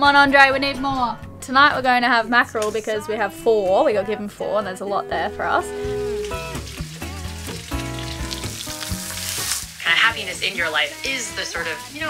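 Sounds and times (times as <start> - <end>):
background music with held chords: 0.0 - 12.0
fish sizzling in a pan: 5.6 - 12.0.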